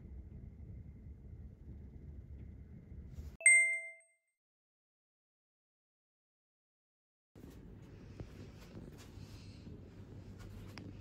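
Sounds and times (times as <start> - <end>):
low city rumble: 0.0 - 3.4, 7.4 - 11.0
bright chime ding: 3.4 - 4.2.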